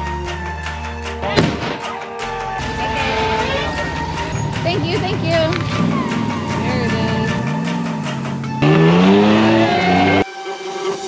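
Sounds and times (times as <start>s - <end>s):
background music: 0.0s - 11.0s
sharp bang: 1.2s - 5.0s
voices: 1.2s - 8.6s.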